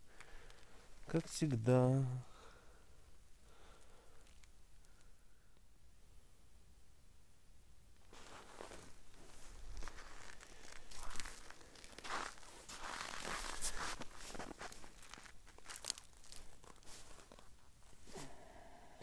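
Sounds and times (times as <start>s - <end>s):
clothing rustling: 8.0s - 18.4s
boots crunching on snow: 8.1s - 17.4s.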